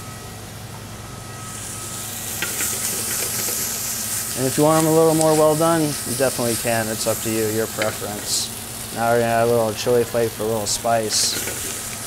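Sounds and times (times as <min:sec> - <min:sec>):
vegetables sizzling in a pan: 0:01.4 - 0:12.0.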